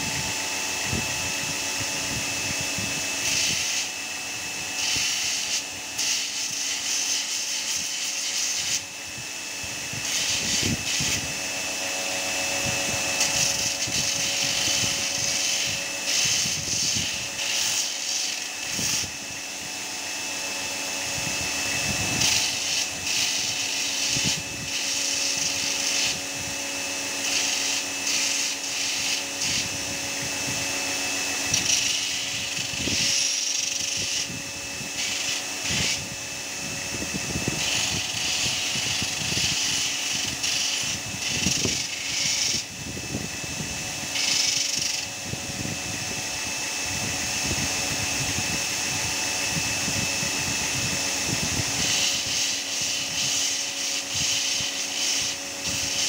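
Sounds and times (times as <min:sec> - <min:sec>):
knife grinding on sanding belt: 0:00.0 - 0:01.2, 0:01.8 - 0:19.6, 0:20.3 - 0:45.2, 0:48.4 - 0:56.0
belt grinder motor hum: 0:00.0 - 0:56.0.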